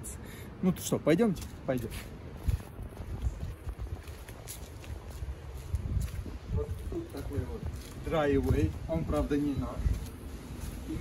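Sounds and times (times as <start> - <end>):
footsteps on concrete: 1.2 - 11.0.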